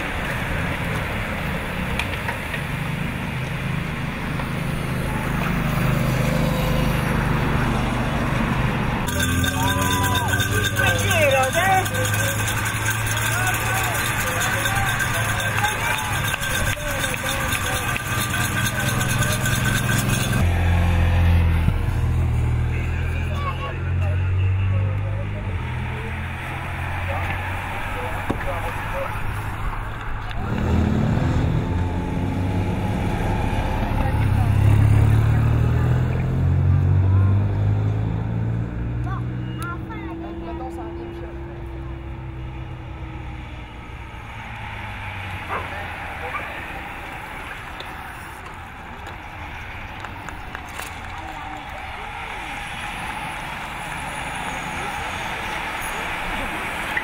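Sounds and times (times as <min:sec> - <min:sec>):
crowd noise: 0:00.0 - 0:57.0
vehicle engines humming: 0:00.0 - 0:57.0
indistinct voices: 0:06.6 - 0:38.1, 0:39.0 - 0:57.0.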